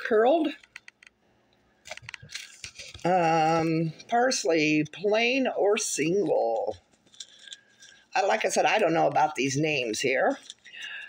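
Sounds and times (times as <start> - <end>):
plastic packet crinkling and clicking: 1.8 - 3.1, 10.3 - 11.0.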